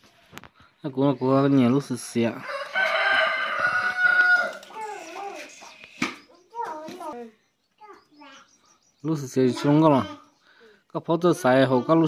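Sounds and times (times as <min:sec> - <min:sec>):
rooster crowing: 0:02.4 - 0:04.8.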